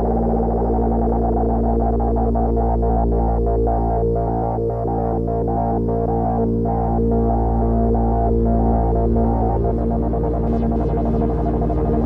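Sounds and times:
low bass drone: 0:00.0 - 0:12.0.

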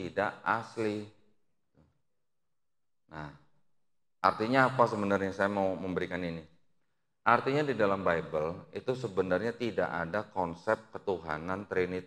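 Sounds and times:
man speaking into a microphone: 0:00.0 - 0:01.1, 0:03.1 - 0:03.4, 0:04.2 - 0:06.4, 0:07.3 - 0:12.0.

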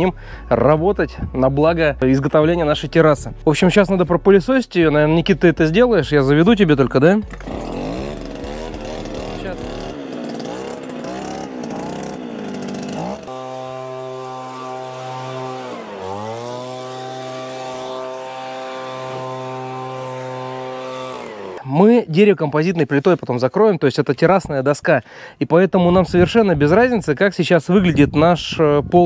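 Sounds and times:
petrol leaf blower running: 0:07.2 - 0:21.8.

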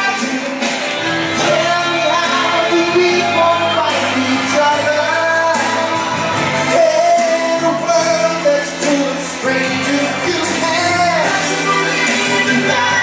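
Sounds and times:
backing music: 0:00.0 - 0:13.0
person singing into a microphone: 0:00.0 - 0:13.0.

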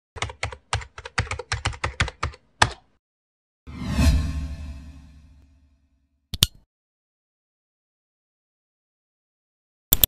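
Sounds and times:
computer keyboard typing: 0:00.2 - 0:02.9
deep whoosh: 0:03.7 - 0:05.5.

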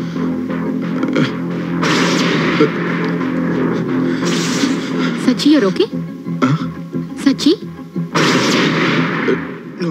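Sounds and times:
loud burst of noise: 0:01.4 - 0:05.2.

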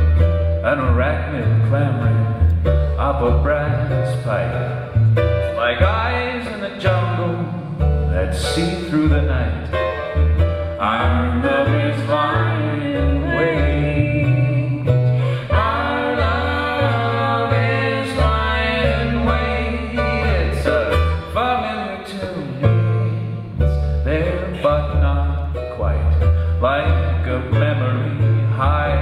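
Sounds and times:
electric cello low notes: 0:00.0 - 0:29.0
ukulele melody: 0:00.0 - 0:29.0.

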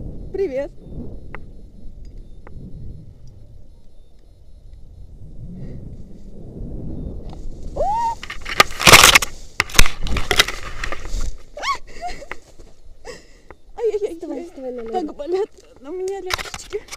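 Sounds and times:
low wind rumble on microphone: 0:00.0 - 0:16.9
branches rustling and snapping: 0:07.3 - 0:11.6.

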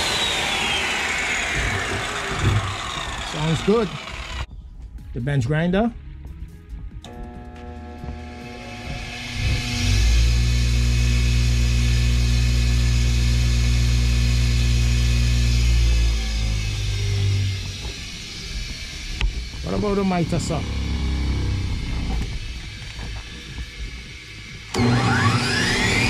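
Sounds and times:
bench grinder motor humming: 0:00.0 - 0:04.5, 0:07.1 - 0:26.0
grinder spinning down: 0:00.0 - 0:04.5, 0:07.1 - 0:26.0.

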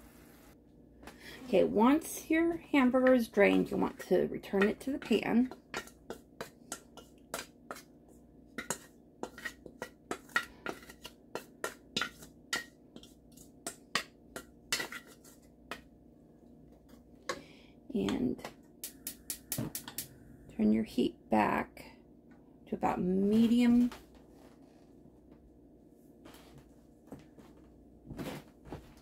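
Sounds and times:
spatula scraping metal colander: 0:01.5 - 0:07.8, 0:08.6 - 0:13.4, 0:14.7 - 0:15.5.

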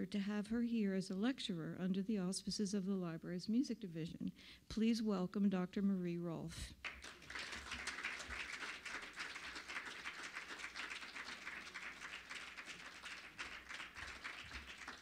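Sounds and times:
audience applauding: 0:06.8 - 0:15.0.

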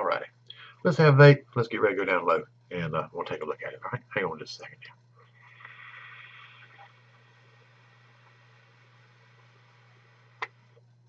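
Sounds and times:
faint airy vape hiss: 0:00.0 - 0:11.0
low steady hum: 0:00.0 - 0:11.0.

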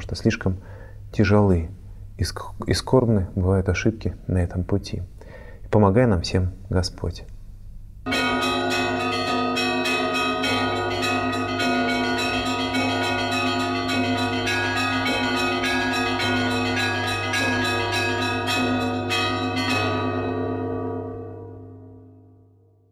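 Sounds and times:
church bells ringing: 0:08.1 - 0:22.6.

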